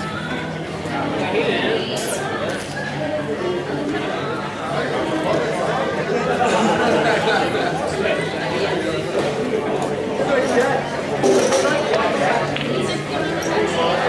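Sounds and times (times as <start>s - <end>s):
background chatter of many people: 0.0s - 14.0s.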